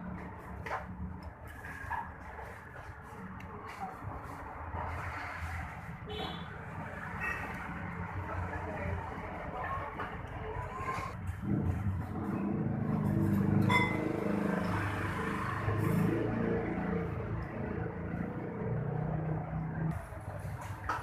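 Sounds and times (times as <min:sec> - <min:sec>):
motor vehicle engine running: 0:06.6 - 0:21.0.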